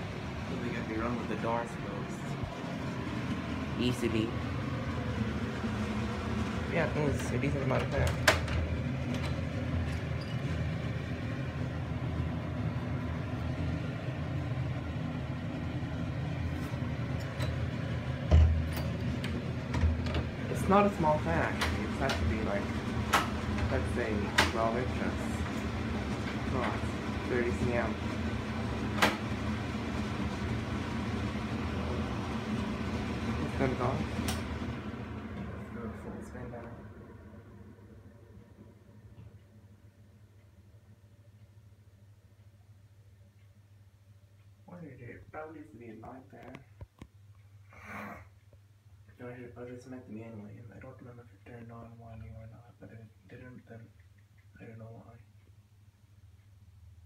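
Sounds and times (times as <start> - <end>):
exhaust fan humming: 0.0 - 57.0.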